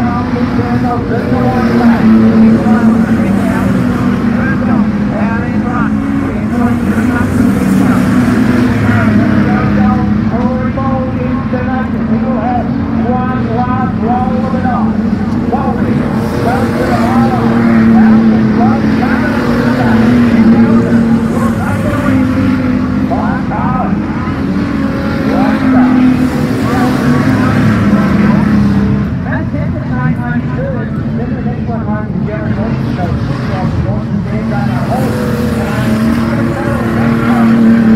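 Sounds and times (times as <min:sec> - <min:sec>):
race car engines droning: 0:00.0 - 0:37.9
voices: 0:00.0 - 0:37.9.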